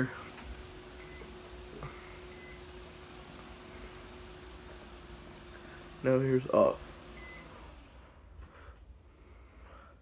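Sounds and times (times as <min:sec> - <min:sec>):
fan blades coasting down: 0:00.0 - 0:08.6.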